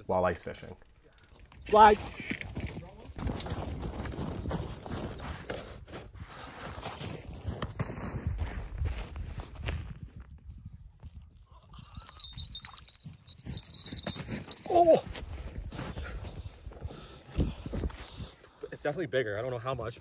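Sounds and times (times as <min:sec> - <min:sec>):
footsteps crunching through snow: 0:02.0 - 0:10.3, 0:13.3 - 0:16.9.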